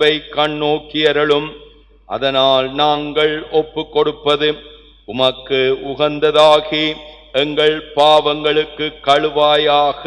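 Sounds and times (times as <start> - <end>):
man chanting a prayer: 0.0 - 10.0.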